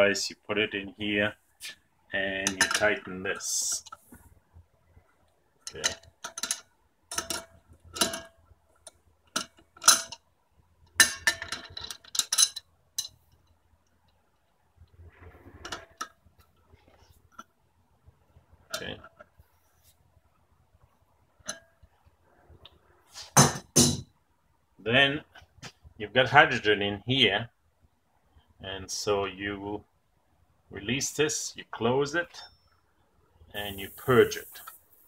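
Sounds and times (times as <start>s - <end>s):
wrench clinking on metal fittings: 5.7s - 8.3s.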